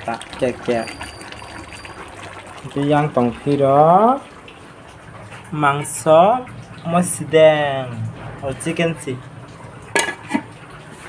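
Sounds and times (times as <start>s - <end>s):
curry bubbling in a pan: 0.0s - 11.0s.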